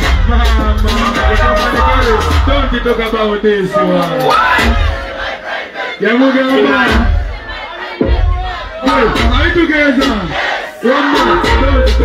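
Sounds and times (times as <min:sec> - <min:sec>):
crowd: 0:00.0 - 0:12.0
bass thump from music: 0:08.0 - 0:09.8.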